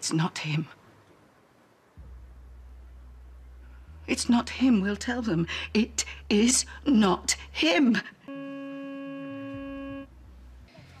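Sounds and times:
faint low rumble: 0.6 - 11.0
steady electronic tone: 8.3 - 10.1.

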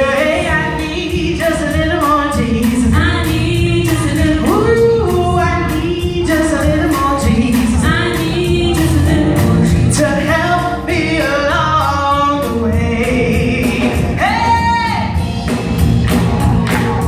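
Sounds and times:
woman singing gospel: 0.0 - 15.1
band playing steady beat: 0.0 - 17.0.

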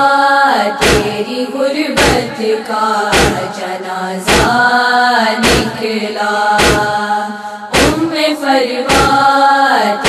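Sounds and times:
women chanting a lament: 0.0 - 10.0
chest-beating thumps: 0.8 - 1.2, 2.0 - 2.4, 3.1 - 3.6, 4.3 - 4.7, 5.4 - 5.8, 6.6 - 7.0, 7.7 - 8.1, 8.9 - 9.2.

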